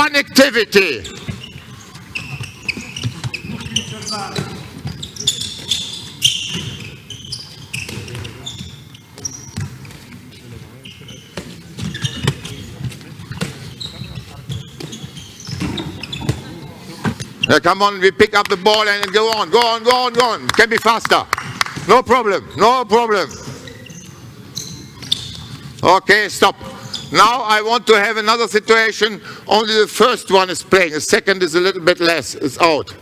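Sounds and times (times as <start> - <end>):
shoes squeaking on floor: 0.8 - 17.8, 21.8 - 27.4
faint indistinct voices: 1.0 - 17.6.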